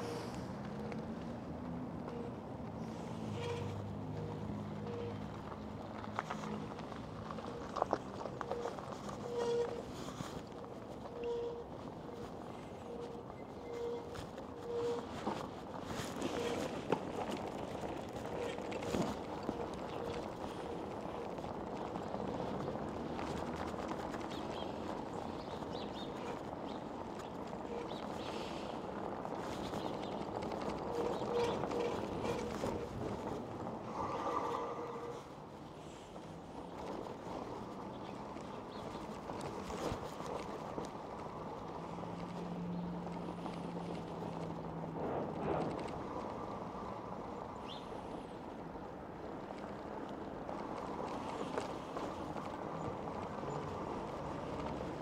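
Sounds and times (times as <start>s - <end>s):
bike rattling over cobblestones: 0.0s - 55.0s.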